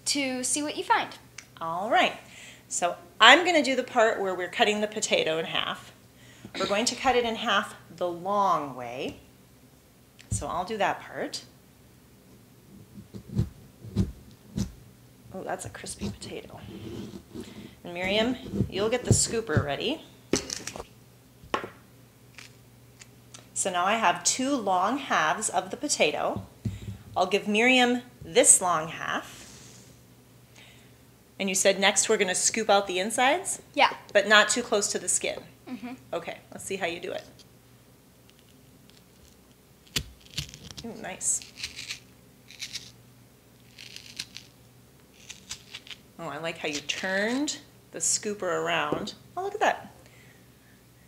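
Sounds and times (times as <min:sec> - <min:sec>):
scooper scraping potato: 0:15.7 - 0:19.7, 0:39.9 - 0:42.9
knife cutting crisp potato: 0:39.8 - 0:42.9, 0:43.7 - 0:44.5, 0:45.2 - 0:46.0.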